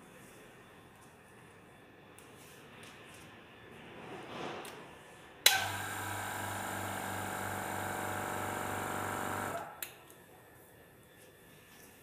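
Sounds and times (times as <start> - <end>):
small electric motor humming: 5.6 - 9.7.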